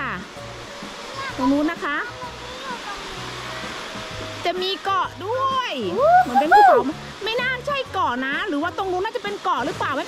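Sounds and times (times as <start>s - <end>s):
waves washing onto beach: 0.0s - 10.0s.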